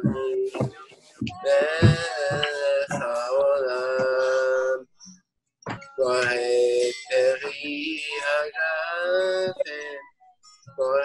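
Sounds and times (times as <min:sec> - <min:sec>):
person singing long notes: 0:00.0 - 0:04.9, 0:05.7 - 0:11.0
backing track with steady beat: 0:00.0 - 0:08.5, 0:09.2 - 0:11.0.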